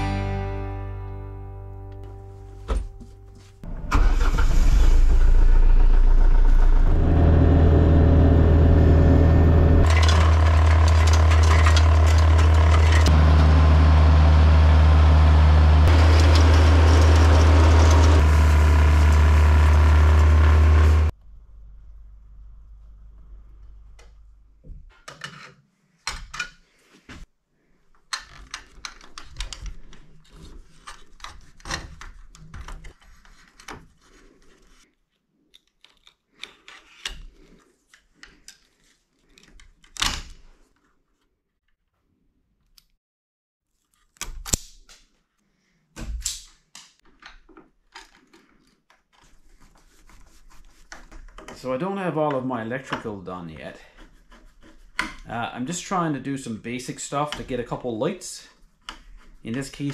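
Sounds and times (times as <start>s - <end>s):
tractor diesel engine running: 3.7s - 21.5s
snowblower throwing snow: 9.9s - 21.1s.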